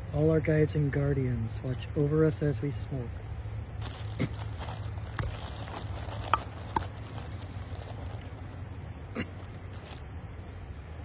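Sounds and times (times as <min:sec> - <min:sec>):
low steady hum: 0:00.0 - 0:11.0
plastic pouch crinkling: 0:03.8 - 0:10.1.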